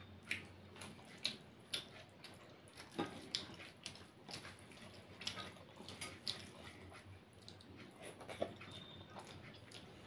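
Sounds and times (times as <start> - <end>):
fingers squishing wet rice: 0.0 - 10.0.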